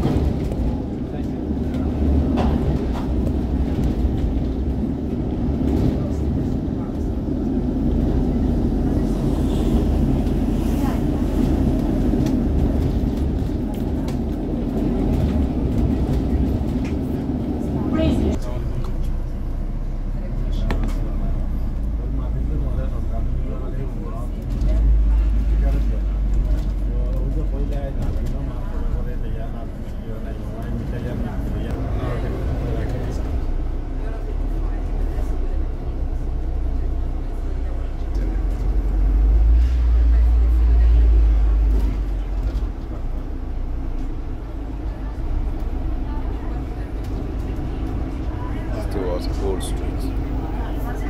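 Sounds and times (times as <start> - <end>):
bus engine drone: 0.0 - 51.0
deeper rumble: 0.0 - 51.0.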